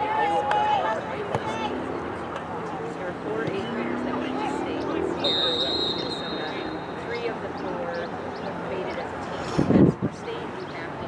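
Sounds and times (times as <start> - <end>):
distant shouting: 3.4 - 8.7
referee's whistle blast: 5.2 - 7.0.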